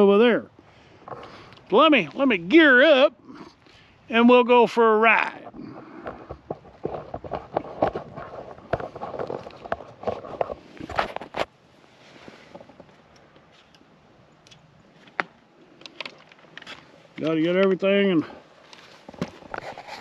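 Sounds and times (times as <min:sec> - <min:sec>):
microphone handling clicks and rustling: 0:01.0 - 0:02.4, 0:05.2 - 0:11.6, 0:12.2 - 0:18.0, 0:18.6 - 0:20.0.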